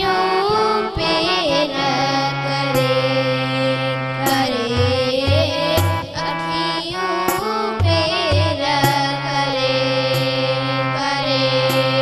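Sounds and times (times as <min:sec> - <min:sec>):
children singing: 0:00.0 - 0:12.0
harmonium chords and drone: 0:00.0 - 0:12.0.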